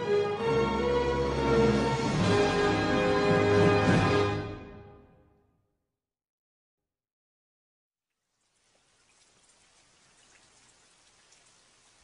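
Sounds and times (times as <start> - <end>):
faint steady hiss with light ticks: 8.1 - 12.0.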